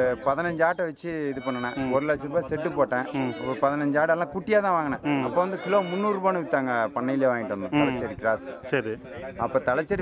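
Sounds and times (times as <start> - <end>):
man talking: 0.0 - 10.0
goats bleating: 1.3 - 2.2, 3.1 - 3.7, 5.5 - 6.2.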